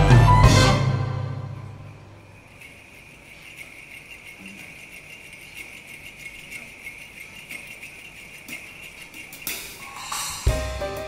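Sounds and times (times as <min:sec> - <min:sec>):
sleigh bells shaken softly: 0:01.5 - 0:11.0.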